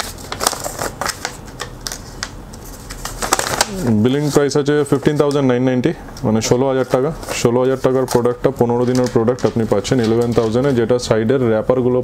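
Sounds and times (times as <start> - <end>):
paper bill rustling: 0.0 - 5.4, 6.8 - 11.2.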